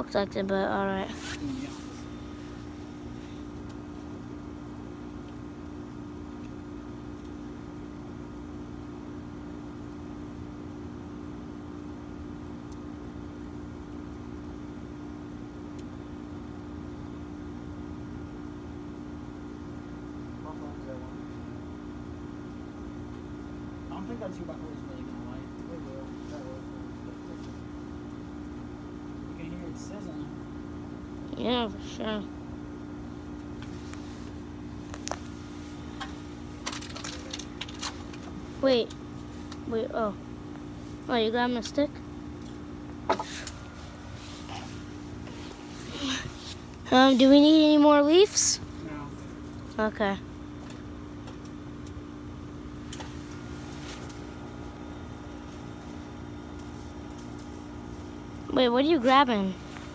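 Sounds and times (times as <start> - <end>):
steady mechanical hum: 0.0 - 59.9.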